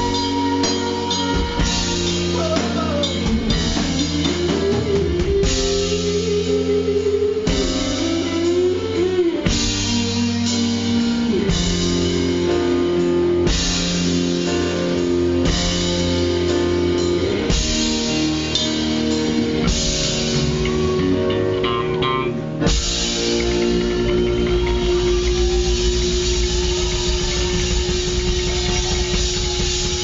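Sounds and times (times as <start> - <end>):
drum kit: 0.0 - 30.0
electric guitar: 0.0 - 30.0.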